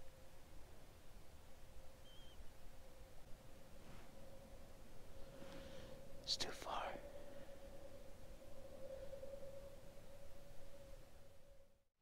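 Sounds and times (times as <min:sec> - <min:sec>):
man whispering: 0:06.2 - 0:07.3.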